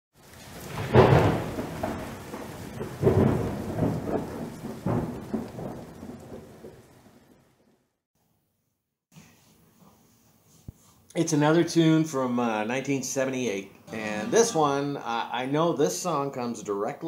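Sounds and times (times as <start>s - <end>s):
rain-like hiss: 0.2s - 7.6s
thunder-like rumbling: 0.3s - 7.6s.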